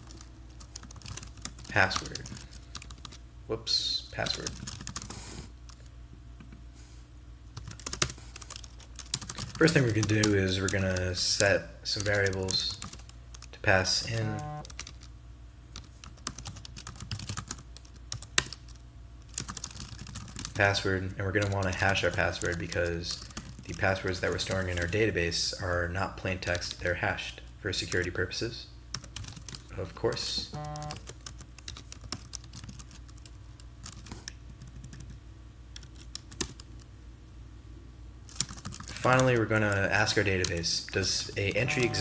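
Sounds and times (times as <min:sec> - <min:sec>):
typing on computer keyboard: 0:00.0 - 0:03.2, 0:04.3 - 0:05.1, 0:07.6 - 0:11.0, 0:12.0 - 0:13.5, 0:14.6 - 0:15.1, 0:15.8 - 0:20.6, 0:29.0 - 0:36.9, 0:38.3 - 0:39.4
faint low hum: 0:00.0 - 0:42.0.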